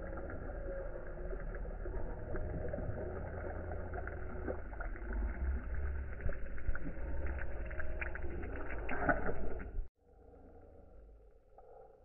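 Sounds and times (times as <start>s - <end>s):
low rumble of wind and water: 0.0s - 12.0s.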